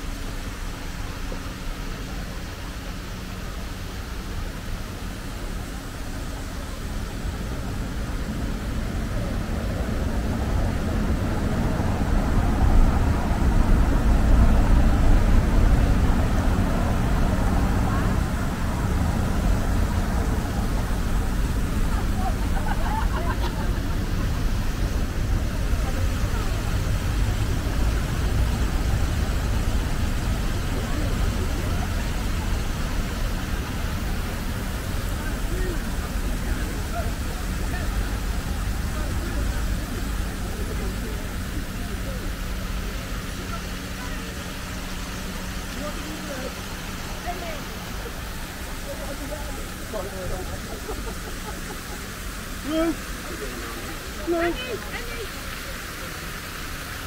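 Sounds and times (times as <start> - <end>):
bus engine rumble: 0.0 - 57.0
street traffic: 0.0 - 57.0
passers-by talking: 1.2 - 57.0.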